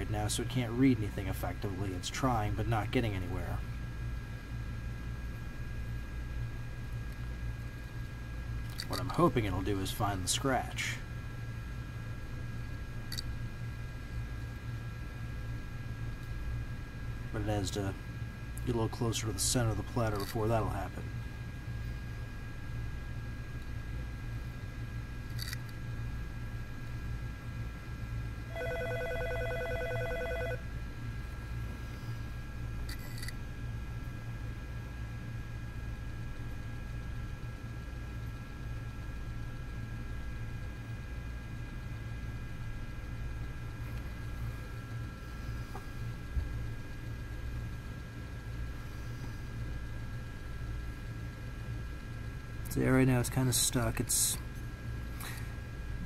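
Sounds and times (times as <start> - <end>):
hard drive spinning hum: 0.0 - 56.0.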